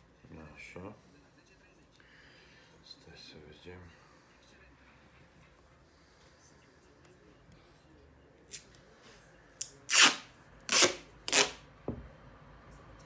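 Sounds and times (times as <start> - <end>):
duct tape ripping off roll: 9.6 - 11.6.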